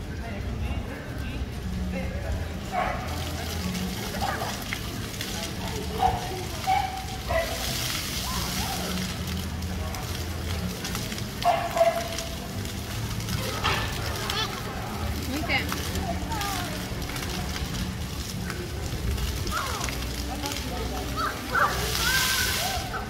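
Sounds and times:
fountain jets spraying water: 0.0s - 23.0s
children calling: 21.0s - 23.0s.

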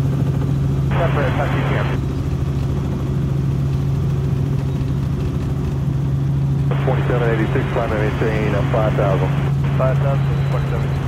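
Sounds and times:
helicopter droning in flight: 0.0s - 11.0s
radio speech: 0.9s - 2.0s, 6.7s - 11.0s.

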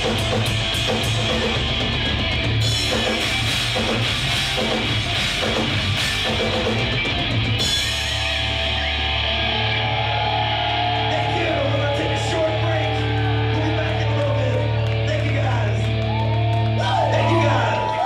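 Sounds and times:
hard rock band playing: 0.0s - 18.0s.

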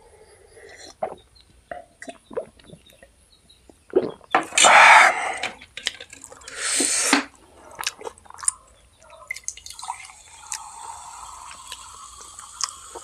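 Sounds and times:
breathy exhales: 4.6s - 5.6s.

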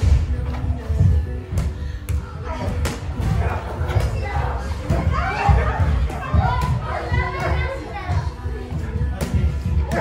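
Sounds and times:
children calling and chattering: 3.4s - 9.0s.

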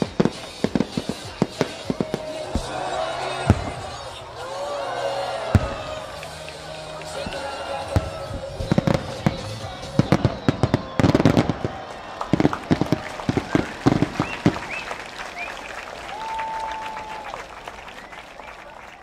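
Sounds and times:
fireworks bursting and crackling: 0.0s - 4.5s, 5.5s - 17.2s.

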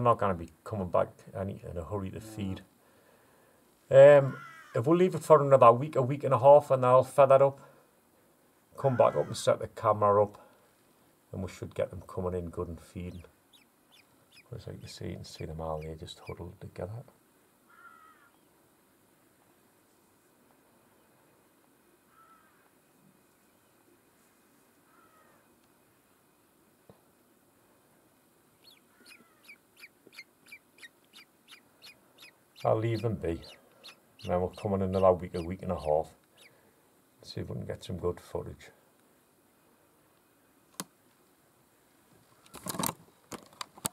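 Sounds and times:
faint bird call: 4.2s - 4.8s, 17.7s - 18.5s, 22.1s - 22.8s, 24.8s - 25.6s, 28.6s - 36.6s
camera handling rustling knocks: 42.5s - 43.9s.

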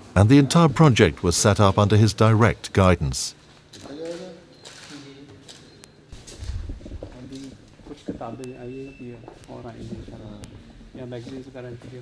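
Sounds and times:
low rumble: 6.3s - 7.2s.

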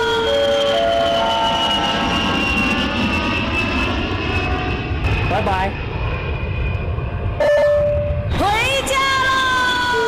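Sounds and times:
cable car low rumble: 0.0s - 2.3s.

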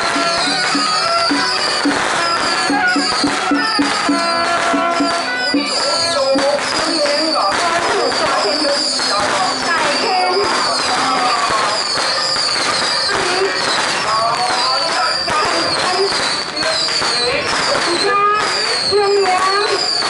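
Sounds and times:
crowd chatter: 0.0s - 20.0s
firecrackers crackling: 0.0s - 20.0s
high falling whistle-like tone: 0.0s - 20.0s.

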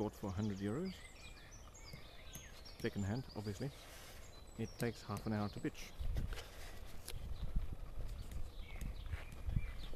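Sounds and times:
faint bird chirps: 0.2s - 6.1s, 7.2s - 9.9s.

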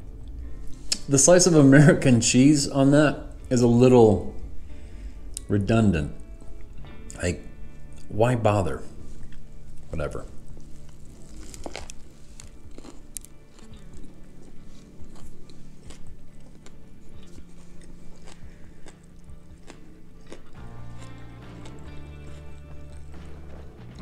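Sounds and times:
background music with low bass: 0.0s - 24.0s
person chewing: 4.8s - 5.5s, 9.2s - 9.5s, 10.3s - 24.0s.

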